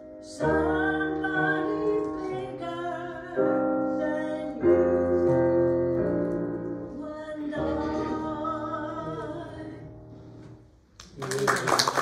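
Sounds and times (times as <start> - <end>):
piano and voice song: 0.0 - 12.0
congregation applauding: 11.0 - 12.0.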